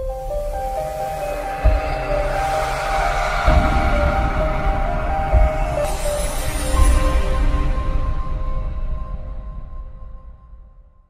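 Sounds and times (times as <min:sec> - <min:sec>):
whooshing hiss: 0:00.0 - 0:08.0
deep boom: 0:01.6 - 0:08.3.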